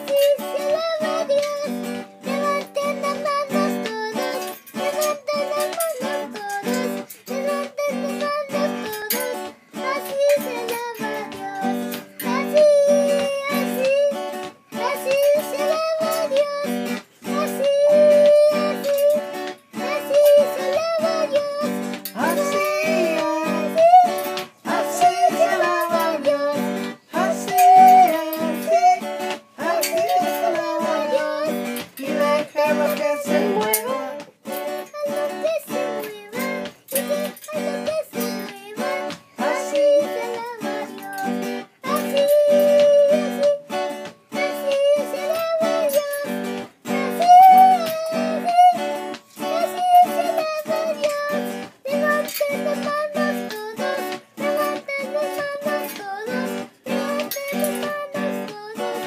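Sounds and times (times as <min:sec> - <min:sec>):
boy singing: 0:00.0 - 0:59.0.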